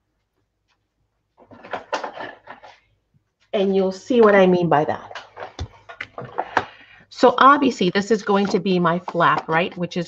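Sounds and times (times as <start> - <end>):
rustling and knocking of handled objects: 0.0 - 7.0, 8.1 - 10.0.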